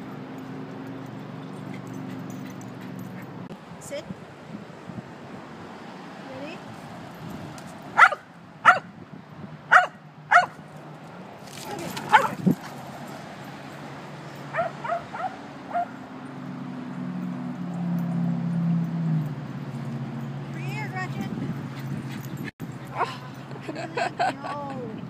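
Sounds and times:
dog barking: 0:08.0 - 0:08.9, 0:09.7 - 0:10.6, 0:12.1 - 0:12.4, 0:14.5 - 0:16.0
dog yipping: 0:08.0 - 0:08.9, 0:09.7 - 0:10.6, 0:12.0 - 0:12.5, 0:14.5 - 0:16.0.

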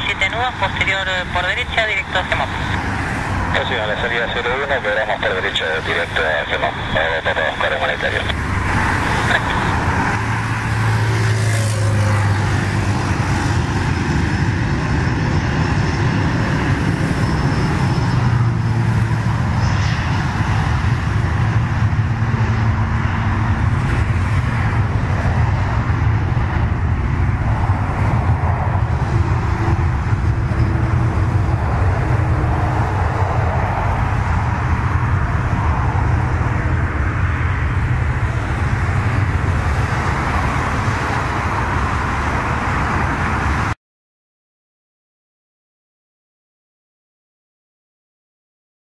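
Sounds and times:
jet engines at takeoff power: 0:00.0 - 0:43.8.

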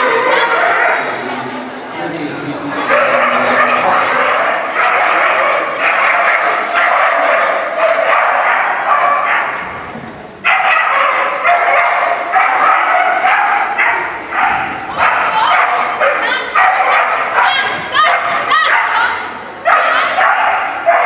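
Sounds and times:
dog barking rapidly: 0:02.9 - 0:09.6, 0:10.5 - 0:21.0.

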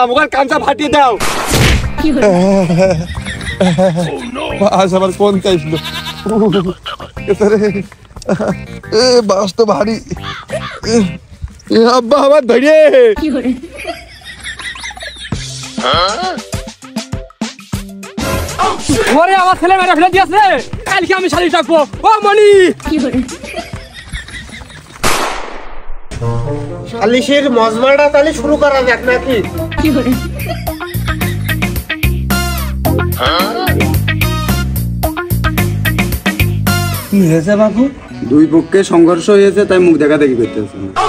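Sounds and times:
whoosh and hit sound effect: 0:25.0 - 0:26.7
man wailing: 0:33.0 - 0:34.4.

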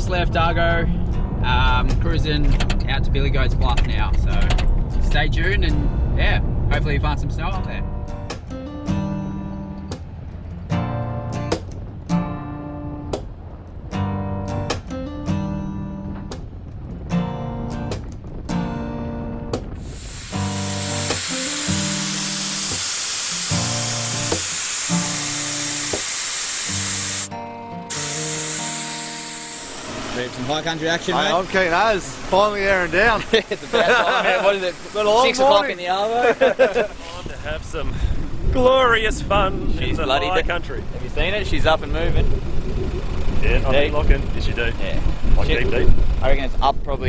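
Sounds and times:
air hissing from tyre: 0:19.8 - 0:27.3, 0:27.9 - 0:30.4.

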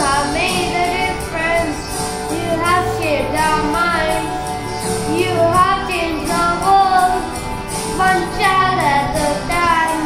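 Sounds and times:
boy singing into microphone: 0:00.0 - 0:10.0
karaoke backing track: 0:00.0 - 0:10.0.

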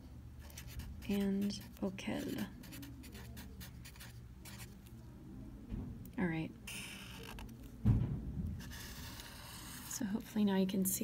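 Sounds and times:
pen scratching on paper: 0:00.4 - 0:04.8, 0:08.6 - 0:10.0
low thump: 0:07.8 - 0:08.6.

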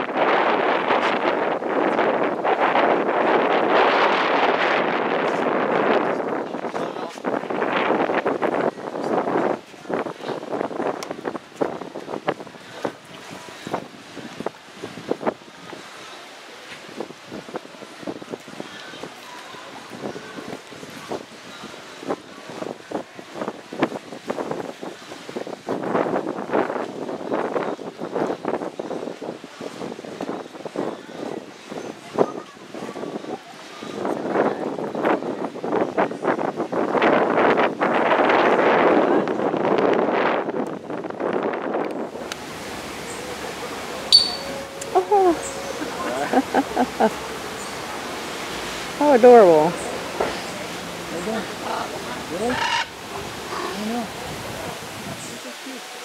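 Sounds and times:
wind on microphone: 0:00.0 - 0:56.0
water splashing against rocks: 0:41.8 - 0:56.0
short bird calls: 0:44.1 - 0:44.8.

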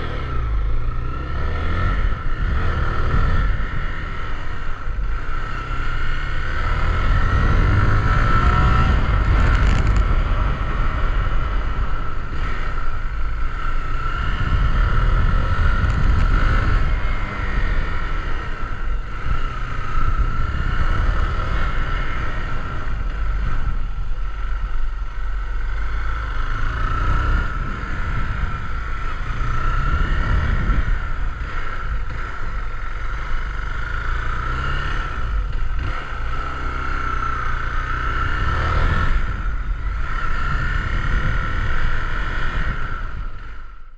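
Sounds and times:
motorcycle engine running: 0:00.0 - 0:43.9.

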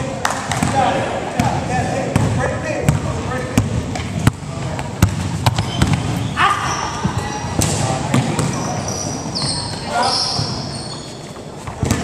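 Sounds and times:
players calling out: 0:05.5 - 0:11.2
short high squeak: 0:08.8 - 0:11.4.

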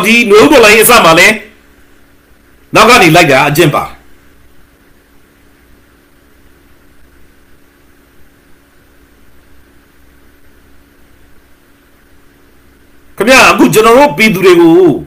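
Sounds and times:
background hiss: 0:00.0 - 0:15.0
faint low hum: 0:00.0 - 0:15.0.

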